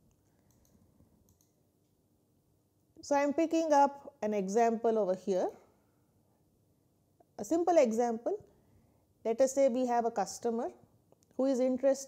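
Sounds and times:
faint clicks: 0.1 - 1.6.

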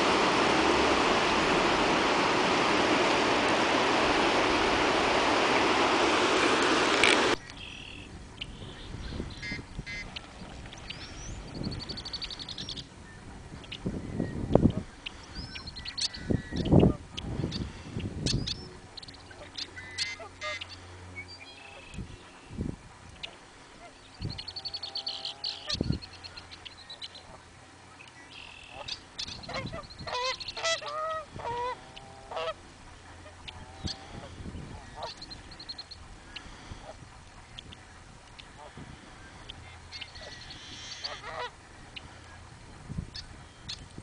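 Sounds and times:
geese honking: 0.0 - 10.2, 14.6 - 22.5, 23.2 - 42.5
wind gusting on microphone: 0.0 - 19.0, 22.0 - 23.3, 25.7 - 26.2, 29.3 - 44.0
small birds chirping and trilling: 7.4 - 31.0, 33.0 - 44.0.

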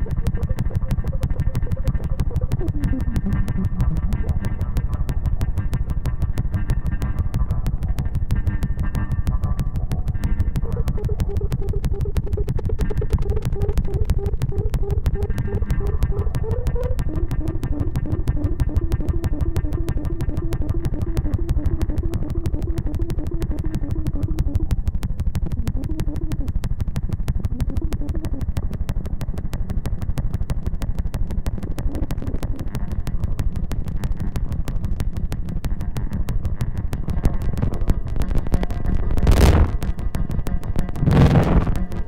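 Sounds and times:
rapid stuttering feedback pulse: 0.0 - 42.0
wavering pitched tone: 10.5 - 29.8.

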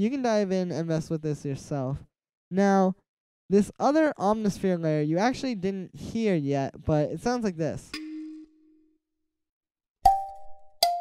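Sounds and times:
sharply struck synth notes: 7.9 - 8.9
synth melody: 8.0 - 9.0.

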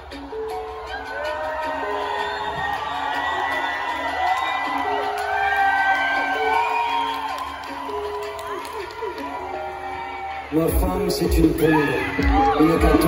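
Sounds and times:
crowd cheering and whooping: 0.0 - 13.0.

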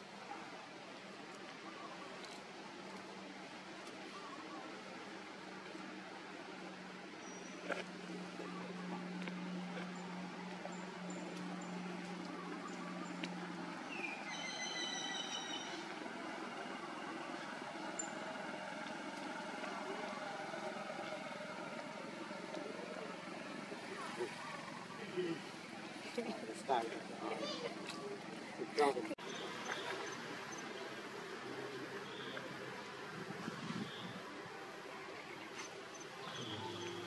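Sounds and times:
steady low hum: 0.0 - 27.2
faint voices: 0.0 - 37.0
high-pitched call: 14.0 - 15.9.

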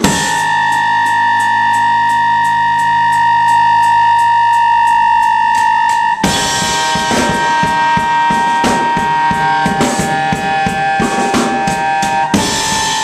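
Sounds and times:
electronic keyboard sustained chord: 0.0 - 13.0.

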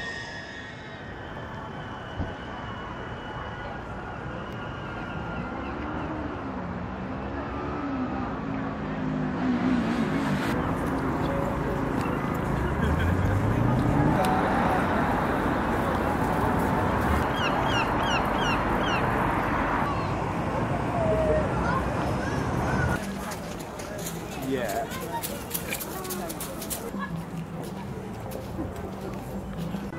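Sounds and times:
people's voices: 0.0 - 29.9.

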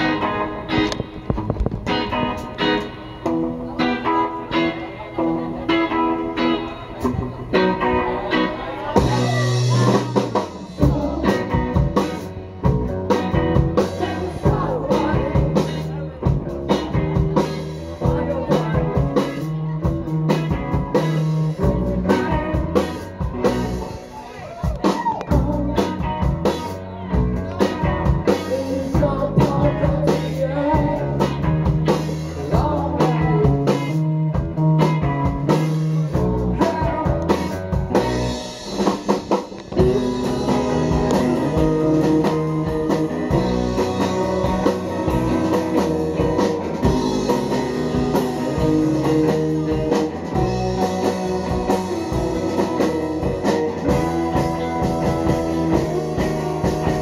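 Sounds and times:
rock band playing: 0.0 - 57.0
man singing: 8.8 - 23.0, 25.2 - 38.4, 39.8 - 57.0.

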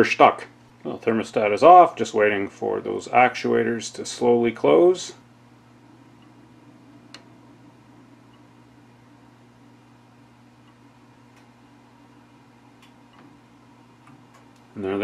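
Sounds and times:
faint pump hum: 0.0 - 15.0.

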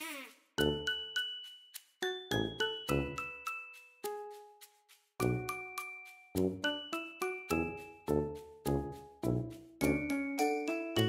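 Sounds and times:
bell-like background music: 0.6 - 11.0.

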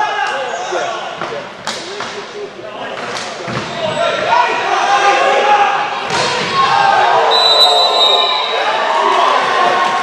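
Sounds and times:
people calling out in a hall: 0.0 - 1.2, 3.7 - 10.0.

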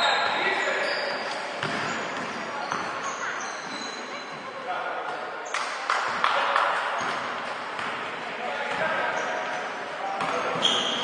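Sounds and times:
shoes squeaking on gym floor: 0.0 - 4.6, 8.9 - 11.0.

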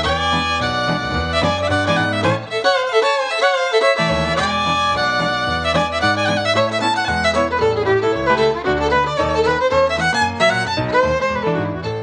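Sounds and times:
fiddle playing quick melody: 0.0 - 12.0
piano accompaniment: 0.0 - 12.0.

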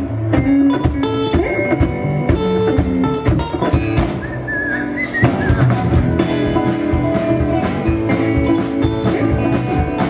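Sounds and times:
country-rock band playing: 0.0 - 10.0.

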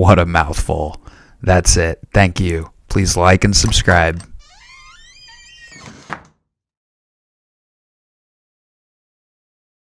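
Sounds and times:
faint creaking squeak: 3.6 - 6.3.

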